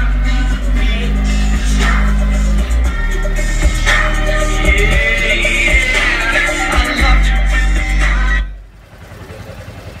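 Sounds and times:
bass-heavy music: 0.0 - 8.8
low rumble: 0.0 - 9.1.

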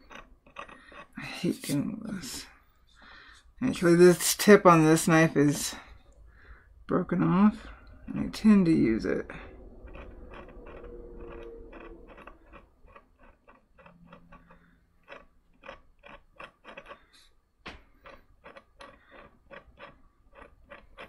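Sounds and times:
knife blade scraping wood: 0.0 - 1.8.

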